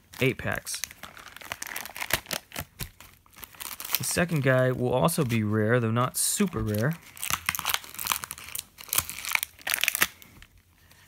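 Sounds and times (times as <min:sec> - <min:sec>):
plastic packaging crinkling: 0:00.0 - 0:05.6, 0:06.4 - 0:10.6.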